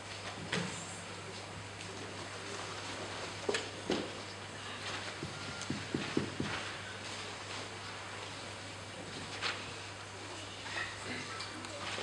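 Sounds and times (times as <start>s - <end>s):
hurried footsteps on stage floor: 5.1s - 6.8s.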